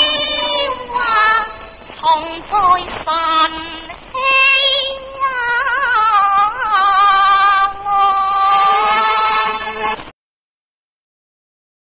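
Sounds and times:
woman singing opera with vibrato: 0.0 - 10.0.

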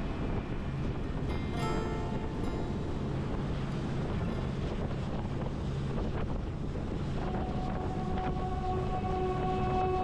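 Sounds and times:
boat engine drone: 0.0 - 10.0
wind rushing over microphone: 0.0 - 10.0.

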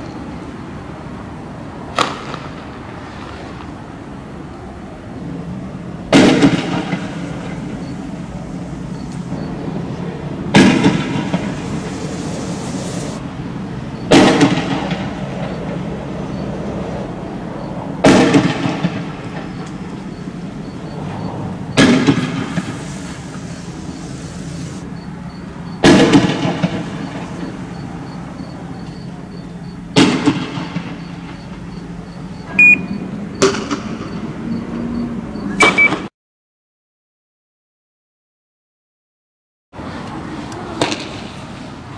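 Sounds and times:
low engine hum: 4.2 - 14.1, 19.0 - 35.6
steady low rumble: 5.1 - 14.0, 19.1 - 29.8
short high steady tone: 32.5 - 33.0.

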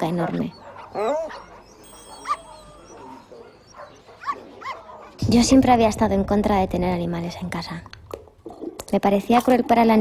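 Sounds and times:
puppy whimpering: 0.3 - 4.9.

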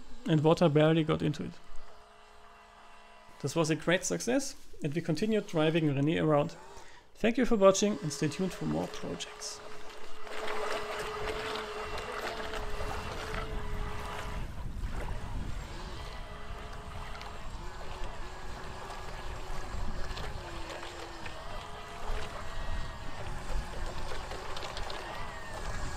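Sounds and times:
model boat motor whine: 0.0 - 25.9
wind on microphone: 10.2 - 25.9.

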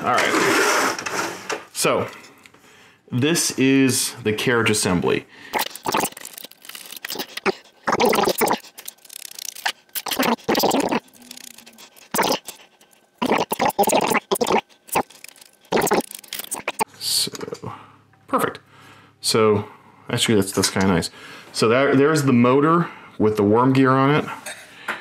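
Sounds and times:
screwdriver scraping and rattling: 5.6 - 10.6.

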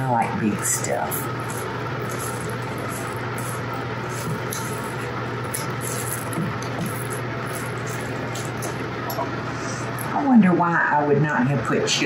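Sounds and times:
steady low hum: 0.0 - 12.0
wooden spoon scraping bowl: 0.8 - 9.3.

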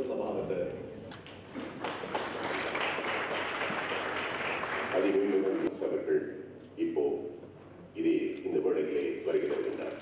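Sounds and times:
audience applauding: 1.6 - 5.7.

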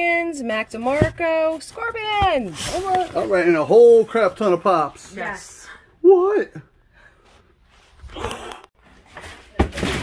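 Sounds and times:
cardboard boxes rustling: 0.4 - 5.4.

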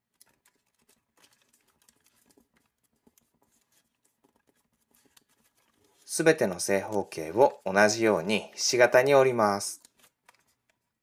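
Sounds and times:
paper crinkling and creasing: 0.0 - 11.0.

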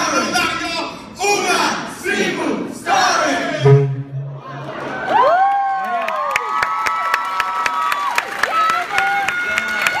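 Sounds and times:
audience cheering: 4.4 - 8.1.

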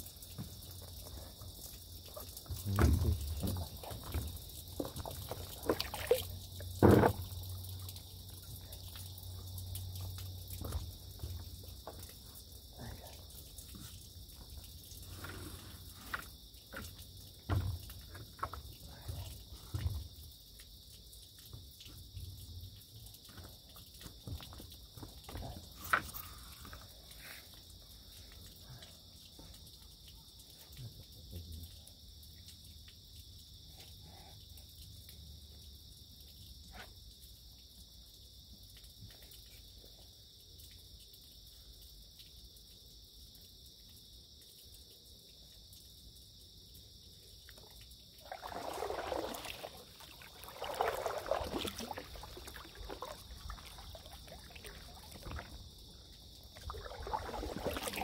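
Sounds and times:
insects chirping: 0.0 - 58.0
thumps on inflatable paddleboard: 6.8 - 7.2, 17.5 - 17.9.

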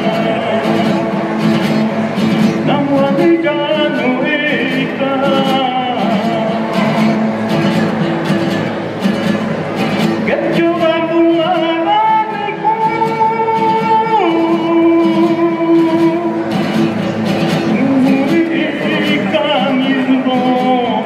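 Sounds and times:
acoustic guitars plucked and strummed: 0.0 - 21.0
man singing folk song: 0.0 - 21.0.

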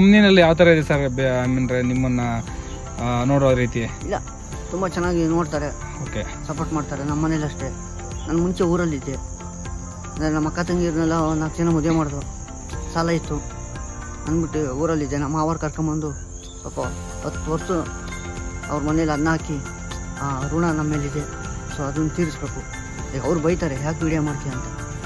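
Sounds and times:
man speaking: 0.0 - 4.0, 5.6 - 7.8
crickets chirping: 0.0 - 25.0.

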